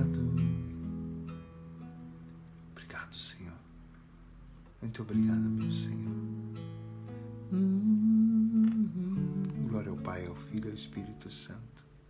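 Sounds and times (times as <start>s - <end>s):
acoustic guitar chord ringing: 0.0s - 2.7s, 5.1s - 12.0s
man humming a held note: 7.5s - 10.1s.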